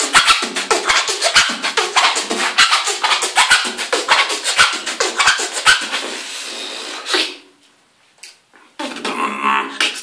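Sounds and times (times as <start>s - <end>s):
person beatboxing: 0.0s - 7.5s, 8.8s - 10.0s.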